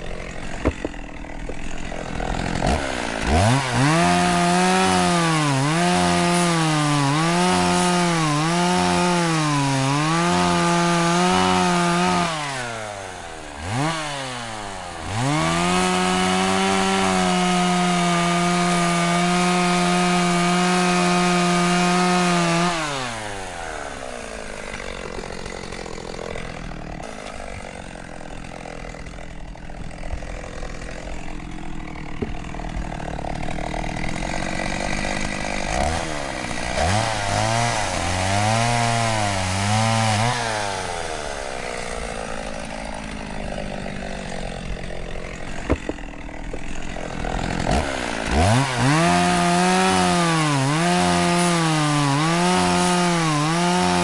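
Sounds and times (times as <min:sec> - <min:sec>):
chainsaw revving and idling: 0:00.0 - 0:54.0.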